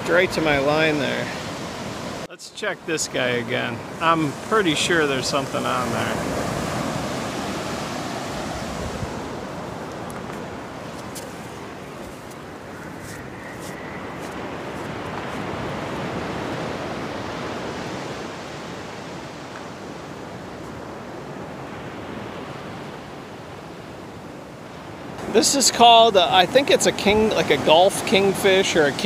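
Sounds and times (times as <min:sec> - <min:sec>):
waves breaking on beach: 0:00.0 - 0:29.0.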